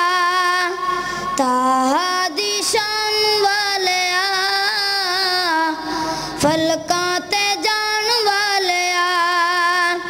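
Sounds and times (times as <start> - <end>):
boy singing unaccompanied: 0.0 - 0.8, 1.4 - 10.0.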